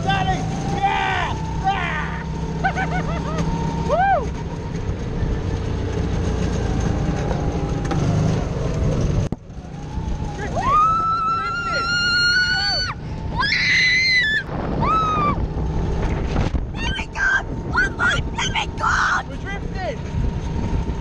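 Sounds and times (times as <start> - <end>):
go-kart engine running: 0.0 - 21.0.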